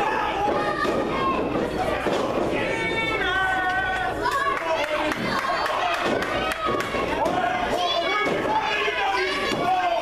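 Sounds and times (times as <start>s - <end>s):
spectators shouting and chattering: 0.0s - 10.0s.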